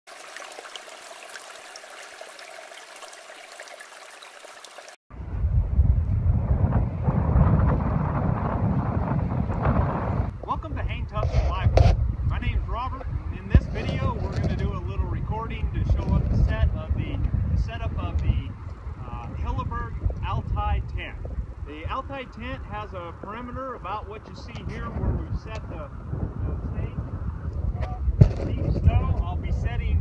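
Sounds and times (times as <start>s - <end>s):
stream water rushing: 0.1s - 5.0s
wind buffeting microphone: 5.1s - 30.0s
man talking: 10.4s - 27.0s, 27.8s - 30.0s.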